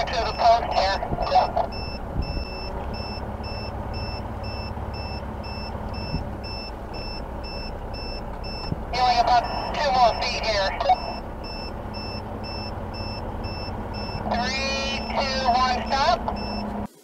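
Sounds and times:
short electronic beeps: 0.0 - 16.7
motorcycle engine rumble: 0.0 - 17.0
wind: 0.0 - 17.0.

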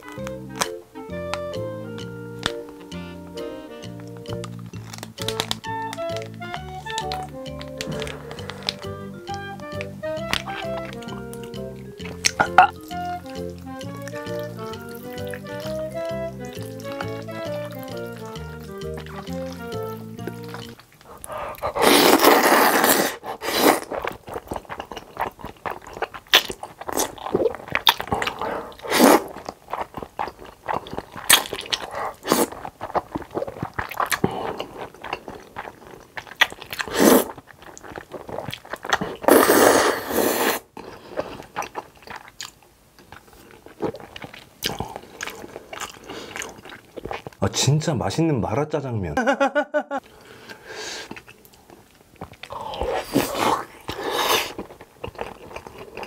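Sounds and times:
background music: 0.0 - 20.8
chewing and mouth smacks: 0.0 - 47.4, 50.1 - 56.0
loud slurping of noodles: 21.2 - 24.0, 28.2 - 29.3, 36.8 - 37.4, 39.0 - 40.7, 52.5 - 54.6.

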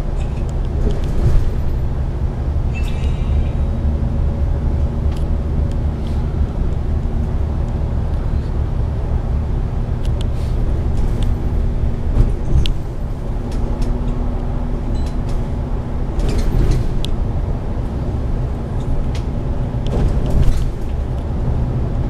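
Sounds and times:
bodywork clicks and rattles: 0.0 - 1.9, 10.0 - 17.2, 18.7 - 21.4
bus engine and road rumble: 0.0 - 22.0.

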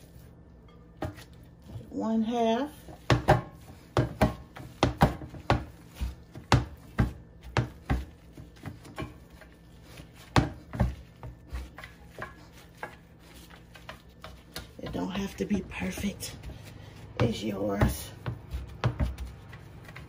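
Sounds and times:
hands patting meat: 2.9 - 20.0.

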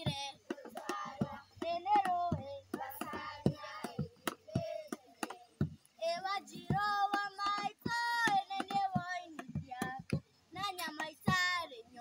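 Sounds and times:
children singing: 0.0 - 10.0.

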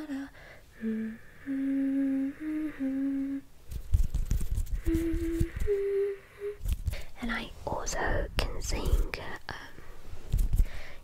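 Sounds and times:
woman softly humming: 0.0 - 3.5, 4.8 - 6.7.

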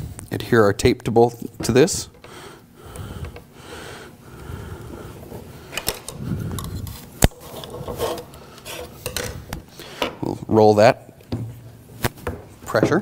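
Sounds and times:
tape rubbing and scraping: 6.5 - 9.1.

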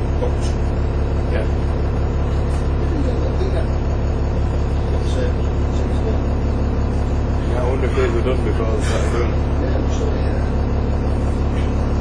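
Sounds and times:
bus diesel engine idling: 0.0 - 12.0.

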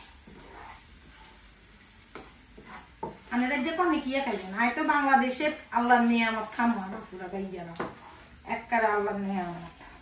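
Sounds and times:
plastic spatula stirring: 0.0 - 1.4, 2.1 - 3.4
food sizzling in frying pan: 0.0 - 10.0.

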